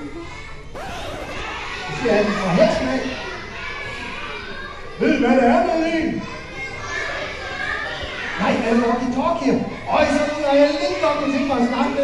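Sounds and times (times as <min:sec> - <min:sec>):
murmur of children's voices: 0:00.0 - 0:12.0.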